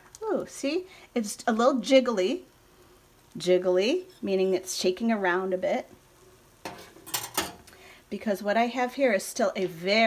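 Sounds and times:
plate and utensils clinking: 6.7s - 7.6s.

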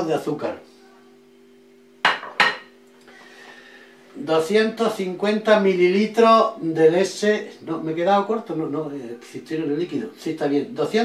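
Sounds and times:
faint steady hum: 0.0s - 11.0s
dish clinking on worktop: 2.0s - 2.7s.

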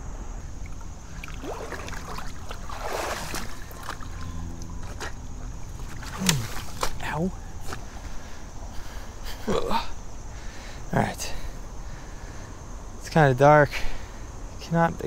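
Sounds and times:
water sloshing: 0.6s - 8.4s
plants rustling: 1.1s - 9.0s
footsteps over rocks: 1.6s - 8.2s
breathy effort sounds: 6.0s - 6.8s.

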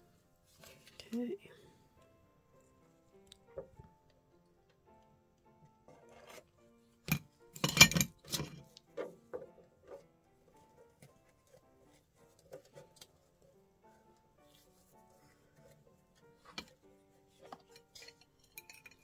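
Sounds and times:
soft background music: 0.0s - 19.0s.

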